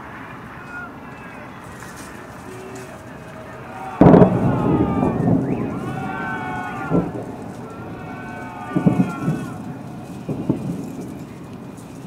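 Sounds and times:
firework boom echoing: 0:03.9 - 0:12.0.

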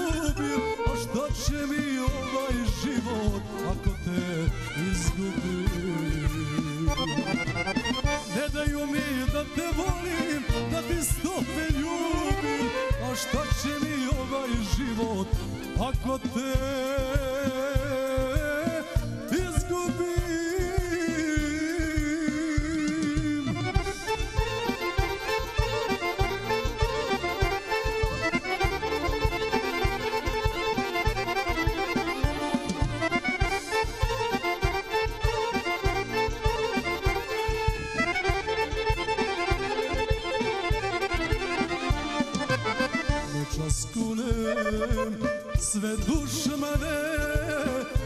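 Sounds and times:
fast accordion runs: 0:00.0 - 0:48.0
steady drum beat: 0:00.0 - 0:48.0.

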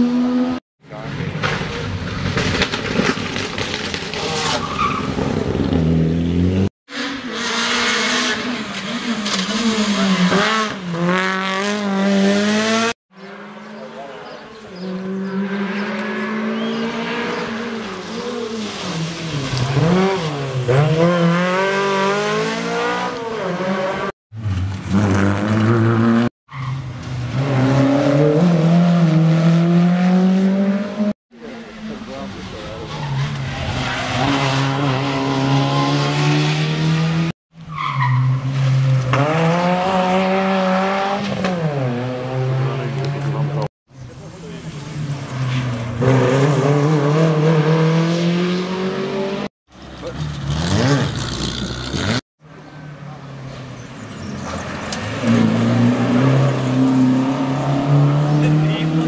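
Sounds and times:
rally car engines revving: 0:00.0 - 0:59.0.

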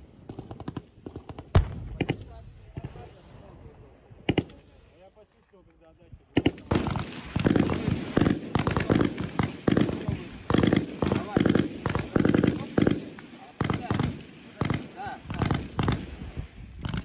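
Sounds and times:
sharp cracks: 0:04.3 - 0:04.6.

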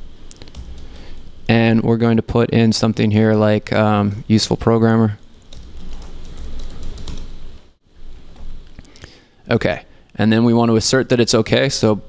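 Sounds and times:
computer keyboard typing: 0:00.3 - 0:01.3, 0:05.2 - 0:07.4.

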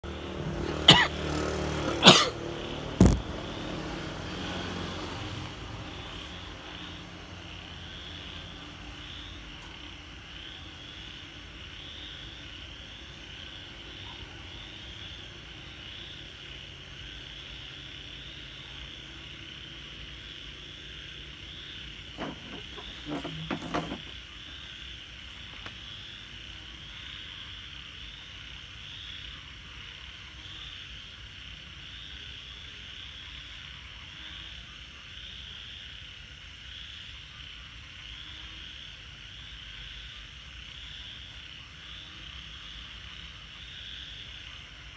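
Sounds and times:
pulsing night insect trill: 0:00.0 - 0:44.9
plastic chair moved on tiles: 0:22.2 - 0:24.3.

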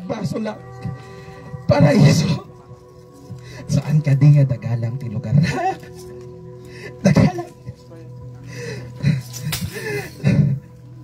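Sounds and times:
background music: 0:00.0 - 0:11.0
sharp smack: 0:09.5 - 0:09.8.

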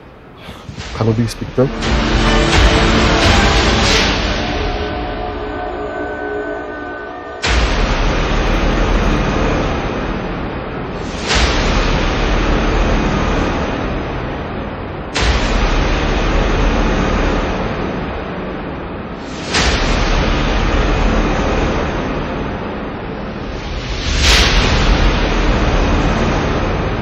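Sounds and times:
loud rushing noise with rumble: 0:00.0 - 0:27.0.

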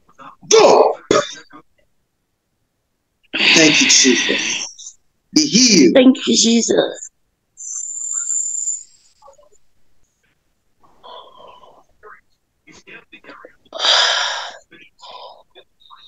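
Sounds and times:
hissing breaths: 0:13.7 - 0:15.7.

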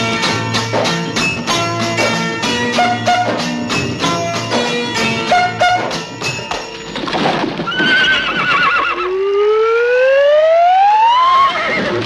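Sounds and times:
horse neighing: 0:07.7 - 0:09.3, 0:11.2 - 0:12.0.

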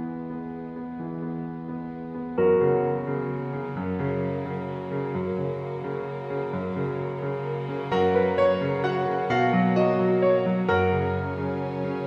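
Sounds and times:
slow gentle background music: 0:00.0 - 0:12.0.

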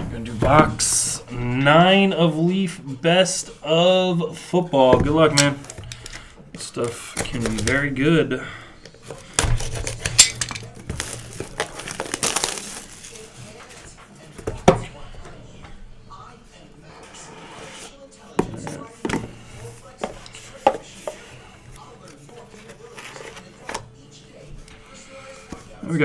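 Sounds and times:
wrapping crinkling: 0:09.1 - 0:13.8.

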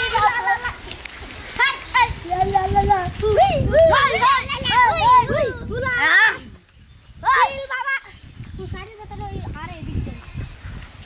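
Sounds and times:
boys shouting and chattering: 0:00.0 - 0:10.5.

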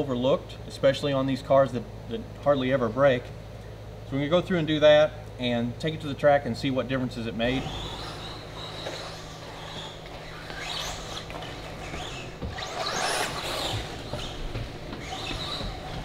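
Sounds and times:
steady low hum: 0:00.0 - 0:16.0
rc car motors whining: 0:07.4 - 0:16.0.

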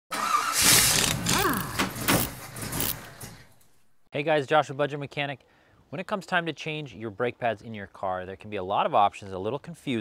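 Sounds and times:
sharp clicks: 0:00.6 - 0:03.1.

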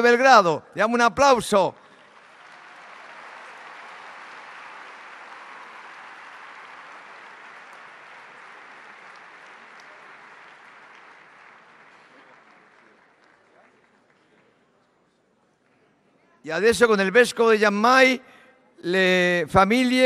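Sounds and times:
audience applauding: 0:01.8 - 0:14.5.

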